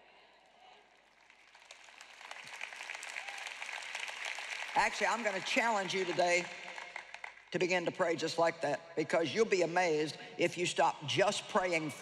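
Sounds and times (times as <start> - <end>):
audience applause: 1.0 - 7.3.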